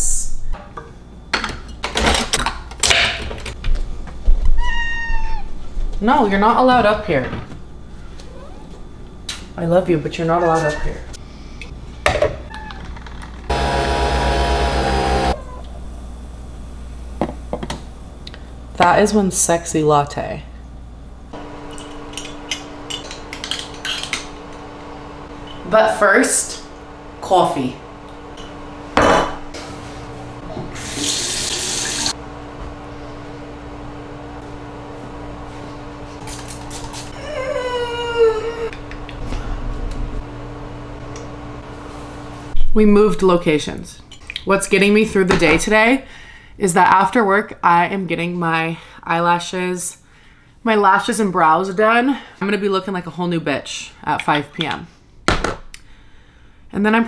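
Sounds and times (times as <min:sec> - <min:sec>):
steady low hum: 0:13.3 - 0:31.1, 0:32.1 - 0:52.4
coffee machine motor whirring: 0:13.5 - 0:15.4, 0:30.7 - 0:32.2
sink tap running: 0:30.7 - 0:32.2.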